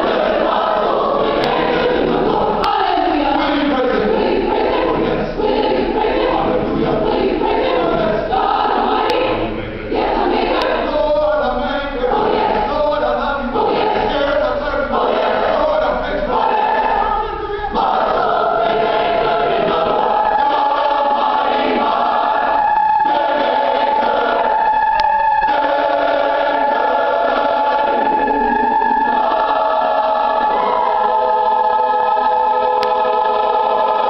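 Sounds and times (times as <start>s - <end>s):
mixed choir singing spiritual: 0.0s - 34.0s.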